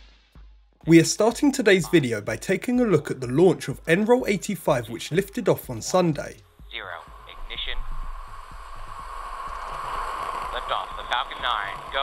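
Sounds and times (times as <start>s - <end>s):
rocket engines rushing roar: 7.1s - 12.0s.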